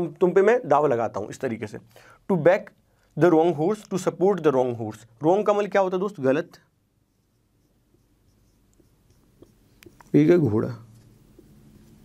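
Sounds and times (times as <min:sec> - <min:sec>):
marker writing on whiteboard: 0:06.6 - 0:10.2.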